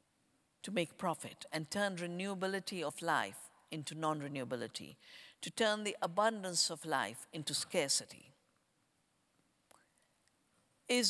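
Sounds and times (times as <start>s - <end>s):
woman speaking: 0.6s - 8.2s.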